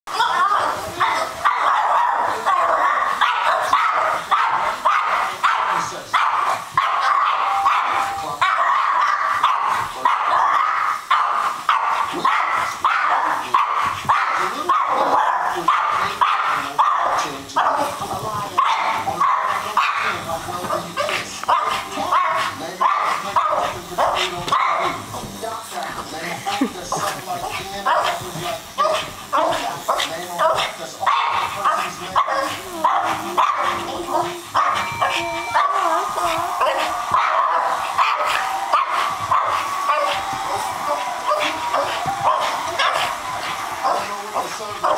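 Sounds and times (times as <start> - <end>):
small dog barking rapidly: 1.4 - 17.9.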